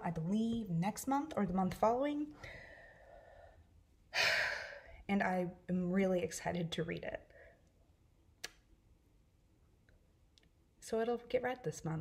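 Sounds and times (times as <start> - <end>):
woman breathing: 2.3 - 5.1, 7.3 - 7.7.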